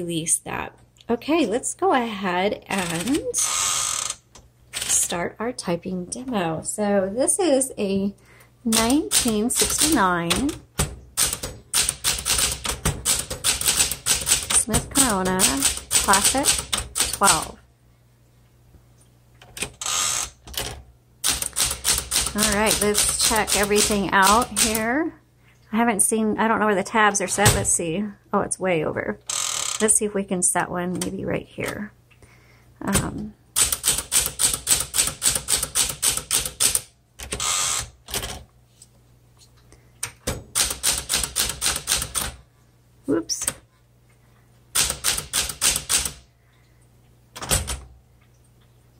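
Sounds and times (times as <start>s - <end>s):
typewriter carriage return rattle: 2.7s - 3.7s, 8.7s - 10.6s, 11.2s - 17.5s, 19.4s - 24.9s, 33.6s - 38.4s, 40.5s - 42.4s, 44.8s - 46.2s
typebars striking platen: 8.7s - 17.5s, 19.5s - 24.9s, 33.0s - 38.4s, 40.2s - 42.4s, 44.7s - 46.2s
typewriter click: 44.8s - 46.2s.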